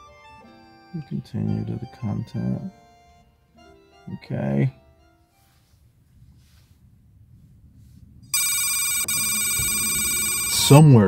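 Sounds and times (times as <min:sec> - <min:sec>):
faint low rumble: 0:05.8 - 0:08.3
high ringing electronic tone: 0:08.3 - 0:11.0.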